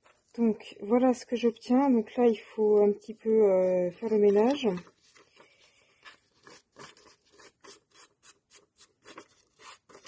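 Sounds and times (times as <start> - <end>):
fingers pushing paper scraps: 2.8 - 5.3.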